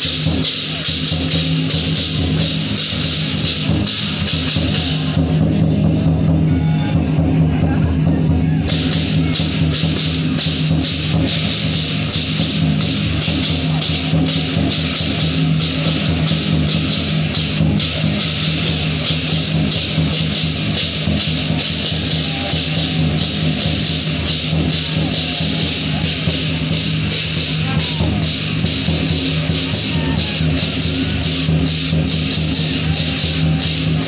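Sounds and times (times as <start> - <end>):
loud fast-beat music: 0.0 - 34.0.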